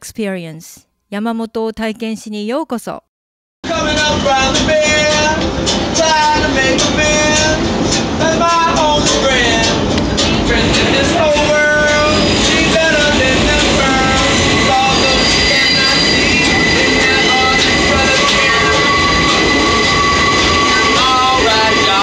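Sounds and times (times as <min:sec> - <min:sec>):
subway car rumbling on track: 0:03.6 - 0:22.0
high-pitched wheel squeal: 0:11.0 - 0:22.0.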